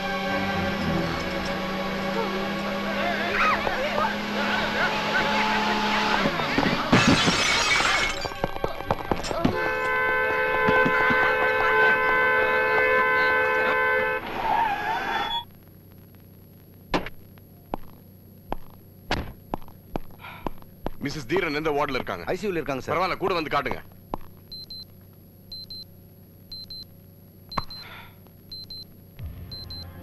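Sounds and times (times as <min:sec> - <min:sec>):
car horn sounding continuously: 0:00.0 - 0:06.3, 0:09.1 - 0:15.4
raised voices: 0:00.0 - 0:07.3, 0:10.5 - 0:15.4
loud smashing crash: 0:06.0 - 0:09.9.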